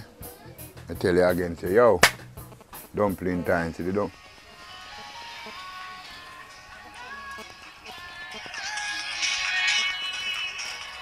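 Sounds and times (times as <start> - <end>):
phone music ringtone: 4.1 - 11.0.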